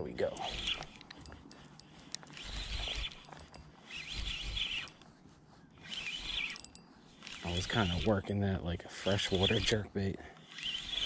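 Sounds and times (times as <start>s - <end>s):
spinning reel cranking: 0.0s - 5.1s, 5.7s - 11.0s.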